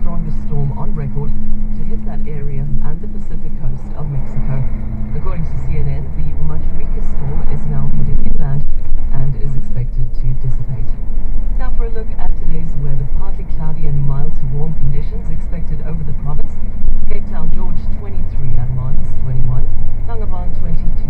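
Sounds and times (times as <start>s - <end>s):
truck engine drone: 0.0s - 21.0s.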